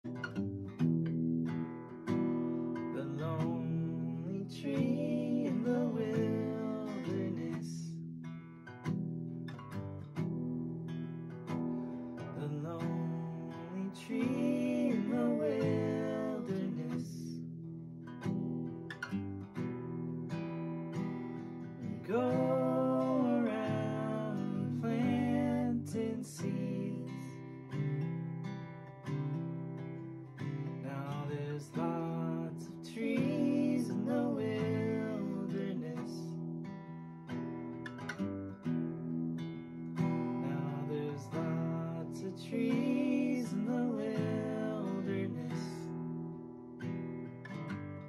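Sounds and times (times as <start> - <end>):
acoustic guitar strumming: 0.0 - 48.0
person singing: 3.0 - 7.9, 12.4 - 17.4, 22.0 - 27.4, 30.9 - 36.3, 40.5 - 45.8.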